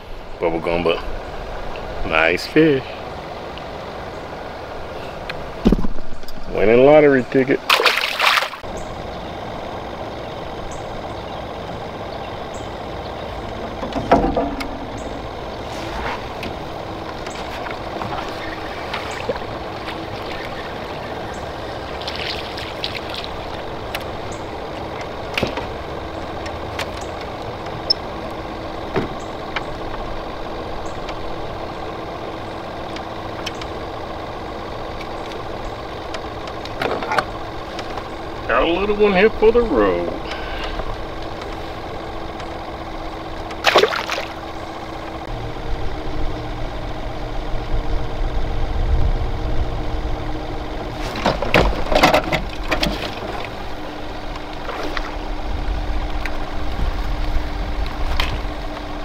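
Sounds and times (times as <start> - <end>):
small boat motor humming: 0.0 - 59.0
short knocks: 13.6 - 15.2.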